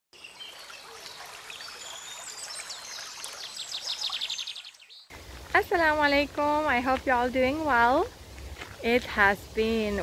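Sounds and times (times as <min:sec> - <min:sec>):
small birds singing and chirping: 0:00.2 - 0:05.1
steady outdoor hiss: 0:05.1 - 0:10.0.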